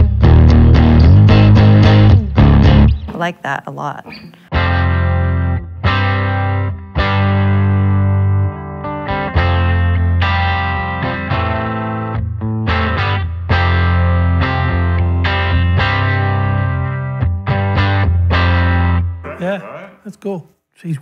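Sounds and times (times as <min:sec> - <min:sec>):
overdriven electric guitar chords: 0:00.0 - 0:03.0, 0:04.5 - 0:19.1.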